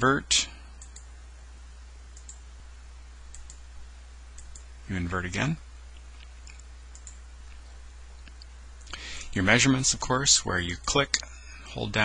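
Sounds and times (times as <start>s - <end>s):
low electrical hum: 0.0s - 12.0s
computer mouse clicks: 0.8s - 1.1s, 2.1s - 2.4s, 3.3s - 3.6s, 4.4s - 4.7s, 6.2s - 7.6s.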